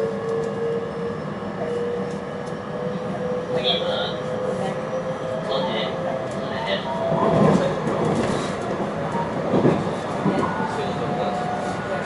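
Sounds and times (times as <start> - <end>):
train wheels rumbling on rail: 0.0 - 12.0
train knocks: 6.2 - 10.8.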